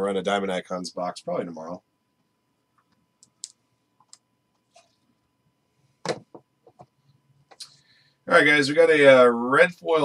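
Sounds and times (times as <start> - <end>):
faint clicks and taps from handling: 6.0 - 7.8.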